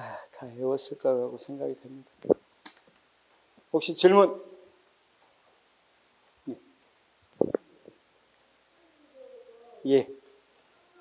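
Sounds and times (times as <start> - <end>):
microphone handling thump and rub: 7.4 - 7.6.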